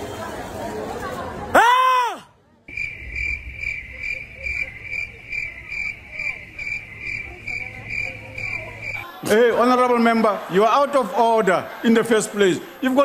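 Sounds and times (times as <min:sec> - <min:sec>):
faint background chatter: 0:00.0 - 0:13.0
cricket chirping: 0:02.7 - 0:09.0.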